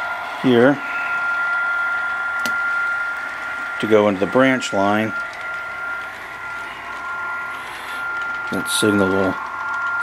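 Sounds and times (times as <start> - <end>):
steady high-pitched whine: 0.0 - 10.0.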